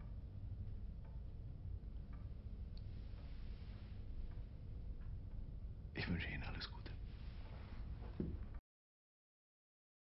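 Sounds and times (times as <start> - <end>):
low room hum: 0.0 - 8.6
person speaking quietly: 6.0 - 7.0.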